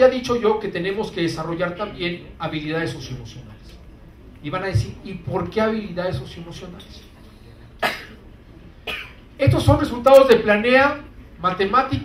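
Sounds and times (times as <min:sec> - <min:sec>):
person coughing: 0:07.8 - 0:08.3, 0:08.9 - 0:09.3.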